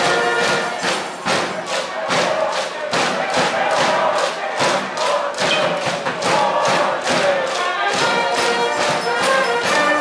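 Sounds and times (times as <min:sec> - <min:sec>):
crowd chanting and shouting: 0:00.0 - 0:10.0
steady drum beat: 0:00.0 - 0:10.0.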